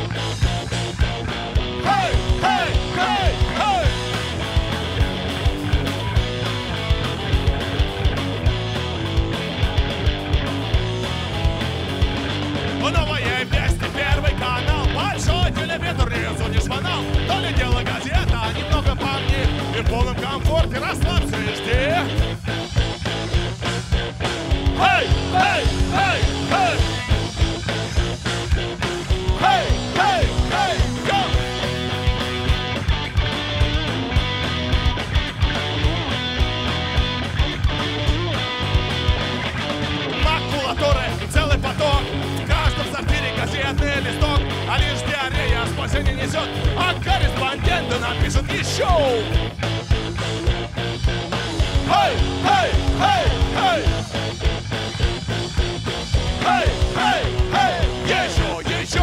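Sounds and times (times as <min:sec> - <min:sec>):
electric guitar bends: 0:00.0 - 0:59.0
rock band playing: 0:00.0 - 0:59.0.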